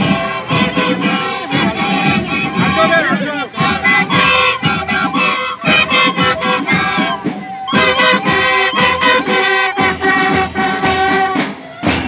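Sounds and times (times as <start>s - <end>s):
marching flute band playing: 0.0s - 12.0s.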